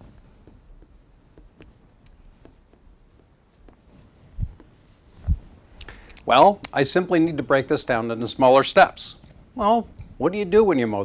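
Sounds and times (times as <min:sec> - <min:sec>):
marker writing on whiteboard: 0:00.0 - 0:06.9.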